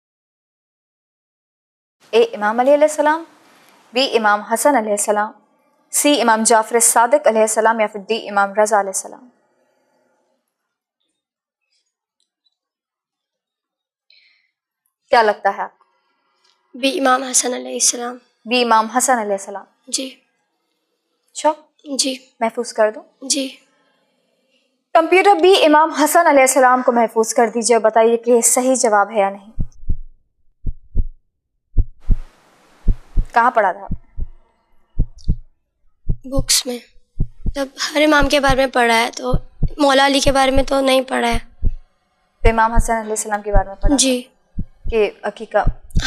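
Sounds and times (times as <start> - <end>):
heartbeat thumps: 29.5 - 31.2, 31.8 - 41.8, 42.4 - 44.0, 44.6 - 46.0
steady hiss: 32.2 - 33.4.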